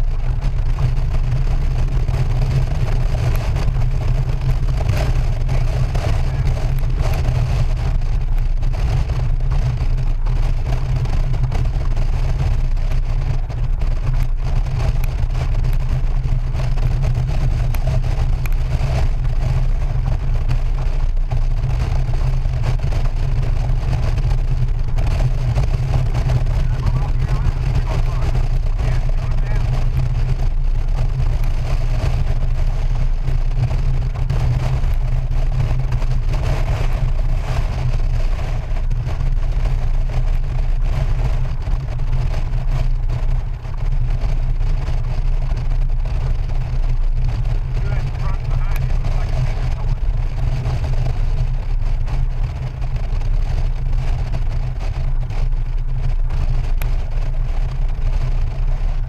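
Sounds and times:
motorcycle engine running: 0.0 - 59.0
wind buffeting microphone: 0.0 - 59.0.

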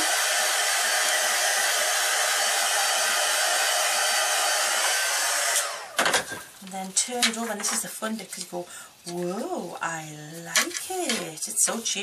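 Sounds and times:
fan winding down: 0.0 - 6.0
heat tool blowing: 0.0 - 6.0.

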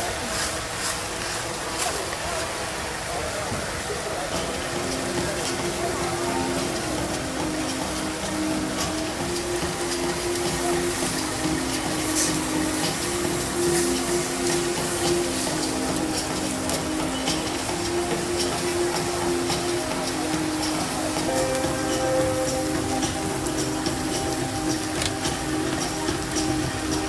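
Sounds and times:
voices: 0.0 - 27.0
meat sizzling on a griddle: 4.5 - 27.0.

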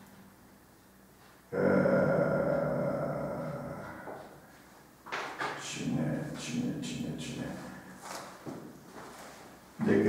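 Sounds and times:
man humming while thinking: 1.5 - 4.5.

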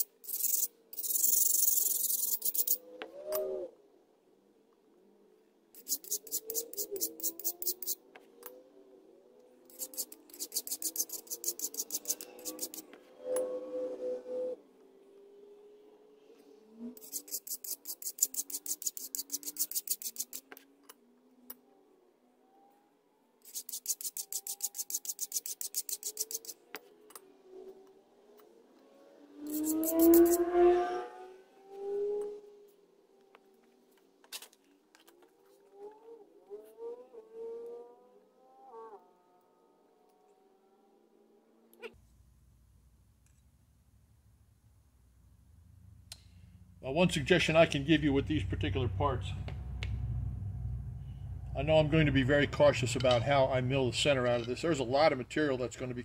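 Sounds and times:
file rasping on metal: 5.8 - 8.0, 9.7 - 12.8, 17.0 - 20.4, 23.5 - 26.6, 29.5 - 30.4
hum: 42.0 - 54.0.

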